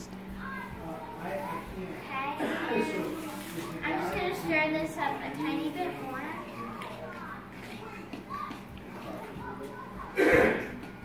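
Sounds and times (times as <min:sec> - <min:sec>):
children's voices chattering: 0:00.0 - 0:11.0.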